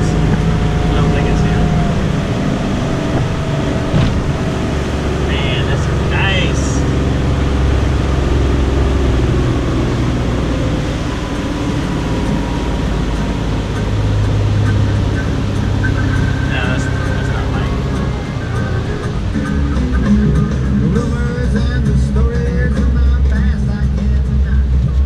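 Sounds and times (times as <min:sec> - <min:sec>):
boat engine droning: 0:00.0 - 0:25.0
constant rushing noise: 0:00.0 - 0:25.0.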